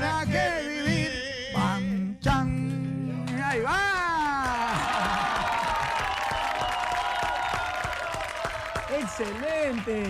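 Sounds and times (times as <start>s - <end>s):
group clapping and cheering: 3.3s - 10.0s.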